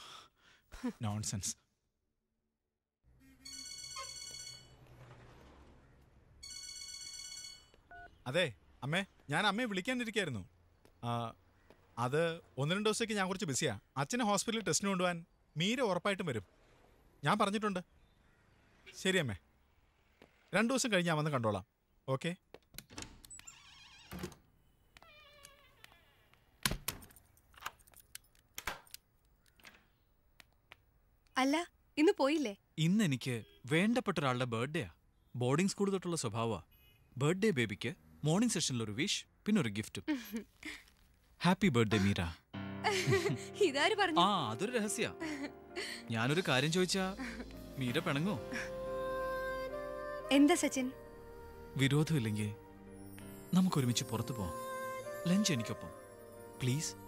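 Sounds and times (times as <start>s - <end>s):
phone ringing: 3.4s - 4.9s, 6.4s - 8.1s
door lock and latch clicking: 22.6s - 24.5s, 26.6s - 29.9s.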